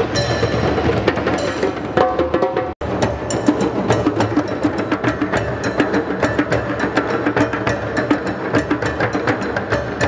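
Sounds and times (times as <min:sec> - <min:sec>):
djembes drumming together: 0:00.0 - 0:10.0.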